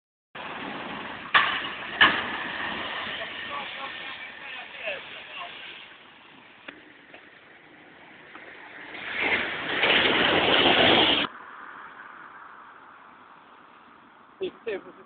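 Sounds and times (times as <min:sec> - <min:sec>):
bus passing close by: 0:07.6 - 0:11.3.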